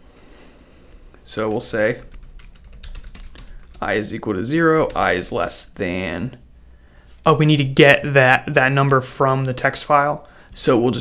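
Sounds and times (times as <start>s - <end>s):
person speaking: 1.2s - 6.5s, 7.1s - 11.0s.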